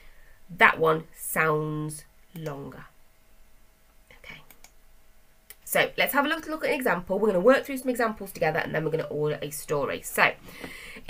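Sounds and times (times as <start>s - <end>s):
faint steady hum: 0.0s - 11.0s
computer mouse clicks: 4.4s - 4.8s.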